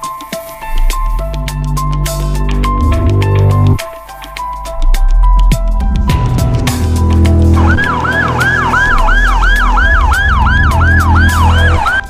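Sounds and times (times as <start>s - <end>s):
ambulance siren yelping: 7.1s - 12.0s.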